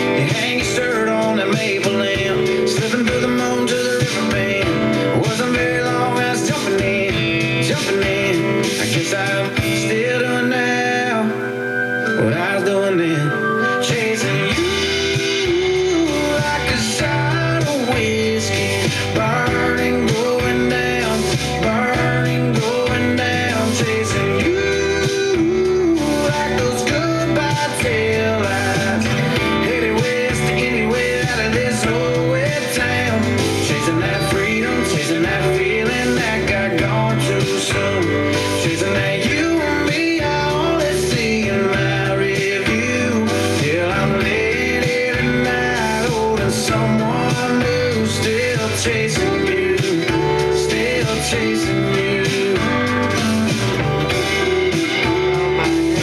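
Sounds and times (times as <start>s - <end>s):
country song on radio: 0.0s - 56.0s.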